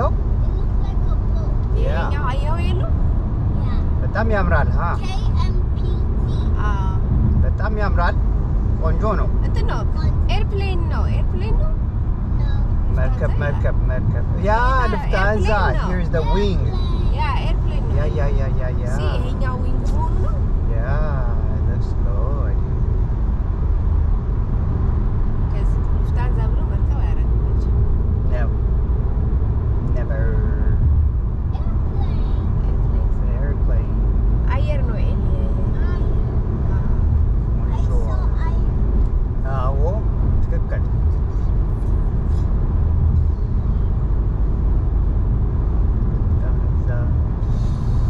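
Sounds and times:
voices talking: 0.0s - 8.2s, 8.8s - 11.8s, 12.4s - 22.6s
car road and engine rumble: 0.0s - 48.0s.

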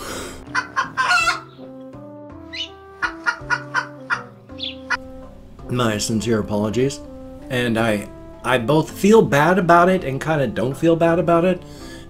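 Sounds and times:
soft guitar music: 0.0s - 12.0s.

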